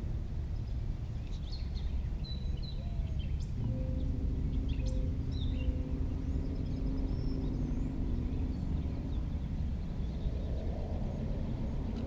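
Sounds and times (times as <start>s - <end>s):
low outdoor rumble: 0.0s - 12.0s
small birds chirping: 0.0s - 12.0s
distant motor humming: 1.0s - 12.0s.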